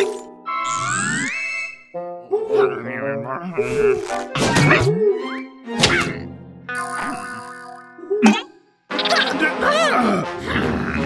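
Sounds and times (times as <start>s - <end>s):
comic cartoon music: 0.0s - 11.0s.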